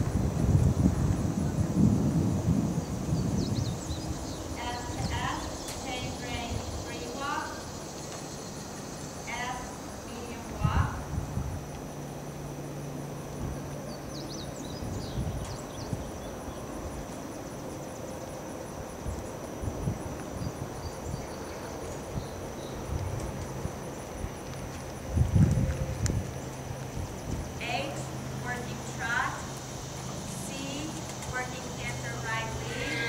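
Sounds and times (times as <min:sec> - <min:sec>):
horse hoofbeats trotting: 0:22.7 - 0:33.0.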